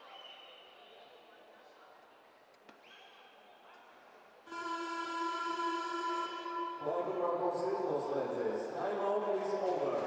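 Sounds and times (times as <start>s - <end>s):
ice rink horn blast: 4.5s - 7.7s.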